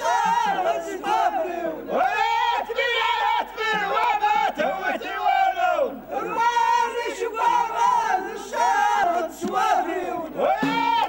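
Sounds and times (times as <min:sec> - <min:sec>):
men singing a chant: 0:00.0 - 0:11.0.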